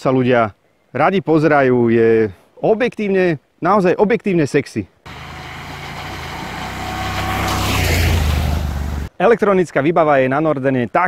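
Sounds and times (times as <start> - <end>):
motorcycle engine passing by: 5.1 - 9.1.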